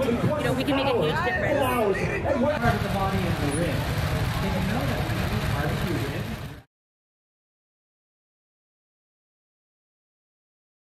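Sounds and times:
people's voices: 0.0 - 6.7.

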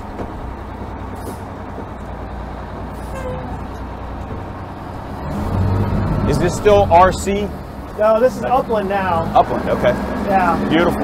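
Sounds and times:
diesel fire engine running: 0.0 - 11.0.

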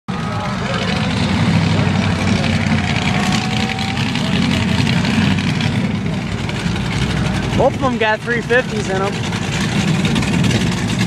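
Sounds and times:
engines rumbling at low revs: 0.1 - 11.0.

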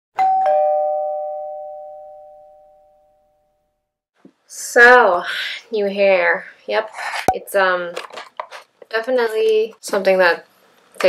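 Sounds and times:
two-note ding-dong chime: 0.2 - 3.1.

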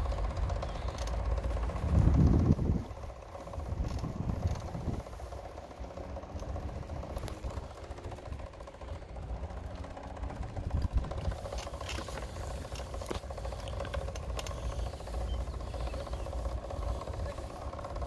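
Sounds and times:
small vehicle rolling on asphalt: 0.0 - 18.0
wind on microphone: 1.7 - 5.2.

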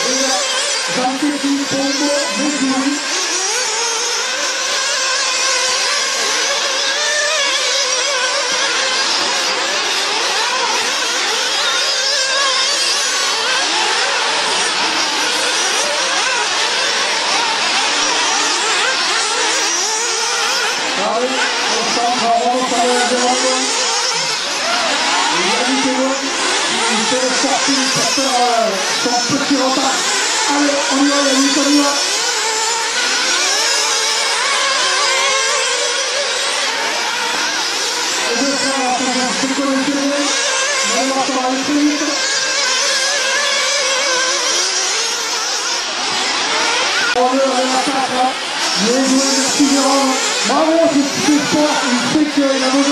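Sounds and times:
rc buggy engines whining and revving: 0.0 - 52.9.

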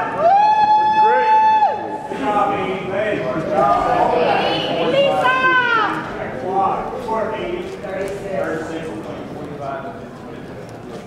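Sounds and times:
high-pitched cheering shout: 0.0 - 2.0
crowd shouting cheers: 0.0 - 2.1.

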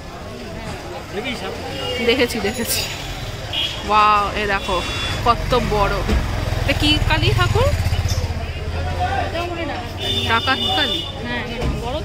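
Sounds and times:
people talking: 0.0 - 12.0
vehicle engine rumbling: 0.0 - 12.0.

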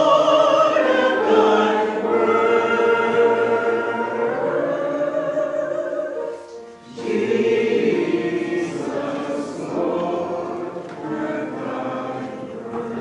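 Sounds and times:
choir singing a sacred song: 0.0 - 13.0.

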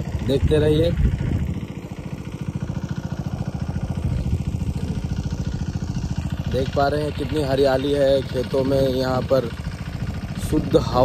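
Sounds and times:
diesel pump engine thumping: 0.0 - 11.0.

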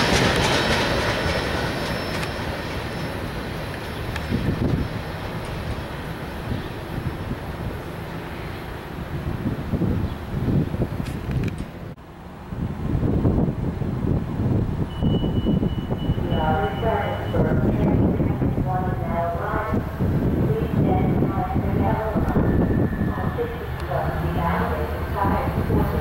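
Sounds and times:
approaching commuter train: 0.0 - 26.0
freight train rolling on rails: 0.0 - 26.0.

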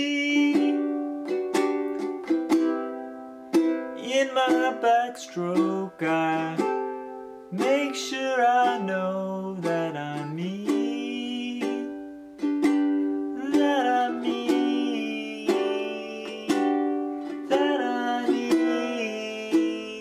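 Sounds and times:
man singing: 0.0 - 1.4, 3.8 - 20.0
ukulele strummed slowly: 0.0 - 20.0.

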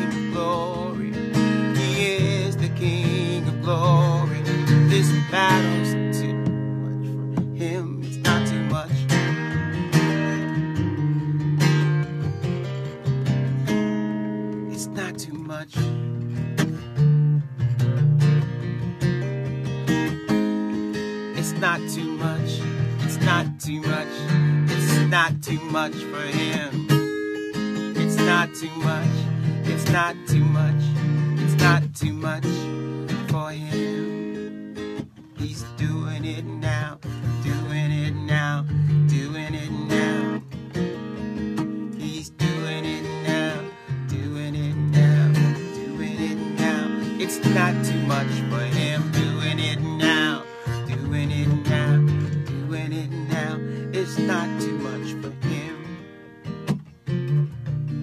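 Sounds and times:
acoustic guitar strummed chords: 0.0 - 58.0.

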